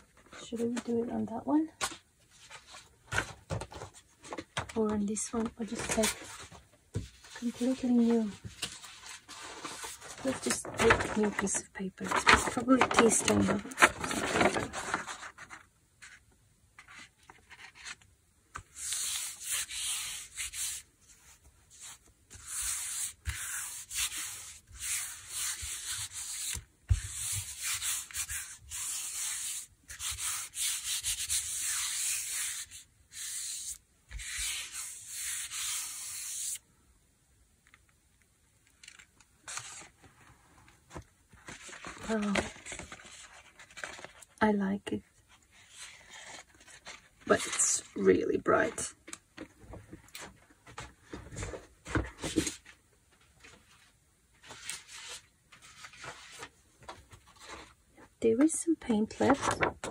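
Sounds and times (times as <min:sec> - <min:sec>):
hands rubbing paper: 0:18.6 - 0:36.6.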